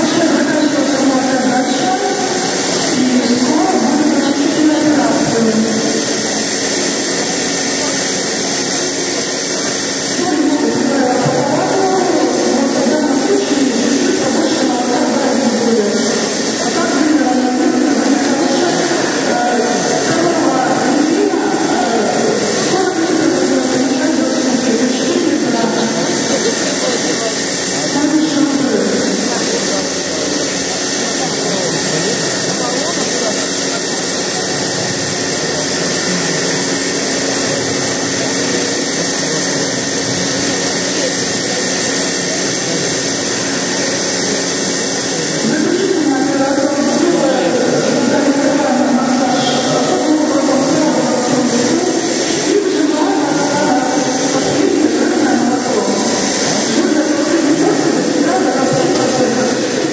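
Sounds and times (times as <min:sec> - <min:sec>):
indistinct voices: 0:00.0 - 0:59.9
milking machine hissing: 0:00.0 - 0:59.9.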